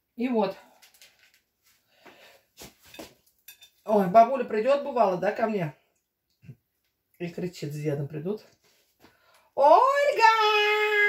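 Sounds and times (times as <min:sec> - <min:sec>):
utensil clinking against dishes: 0:03.0 - 0:03.8.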